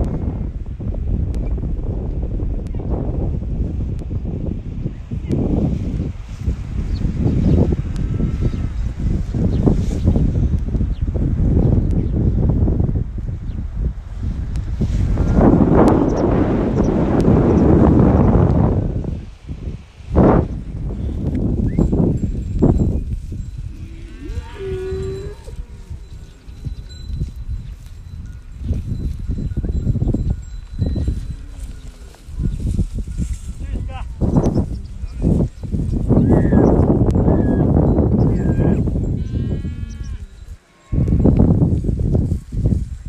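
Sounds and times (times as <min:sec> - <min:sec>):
wind buffeting microphone: 0:00.0 - 0:43.0
cow mooing: 0:23.7 - 0:26.4, 0:38.4 - 0:41.4.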